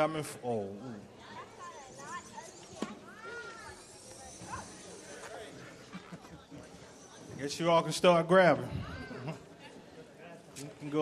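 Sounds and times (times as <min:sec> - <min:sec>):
murmur of chatter: 0:00.0 - 0:11.0
high-pitched cries of onlookers: 0:01.6 - 0:05.3.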